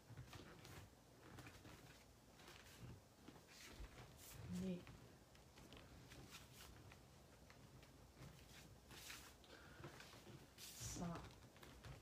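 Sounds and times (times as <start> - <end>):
bare feet on wooden floor: 0.0 - 12.0.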